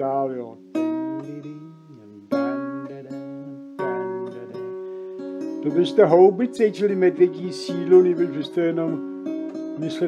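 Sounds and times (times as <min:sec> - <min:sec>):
acoustic guitar slow chords: 0:00.0 - 0:10.0.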